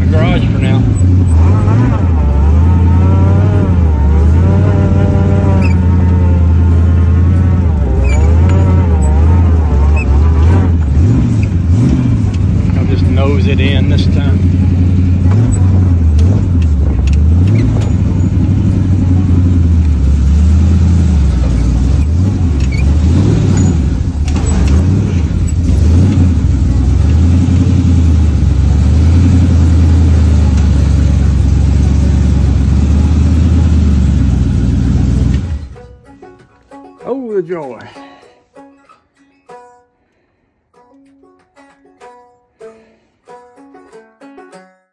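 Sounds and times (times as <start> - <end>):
car engine revving: 0.0 - 36.0.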